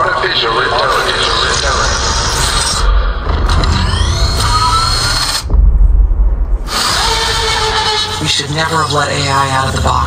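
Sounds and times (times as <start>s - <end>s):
trailer music: 0.1s - 10.0s
rising mechanical whines: 0.3s - 9.7s
deep low rumble: 1.1s - 8.9s.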